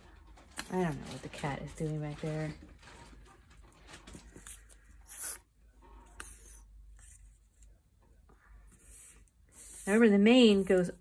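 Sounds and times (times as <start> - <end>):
paper rustling and scraping: 0.3 - 5.4.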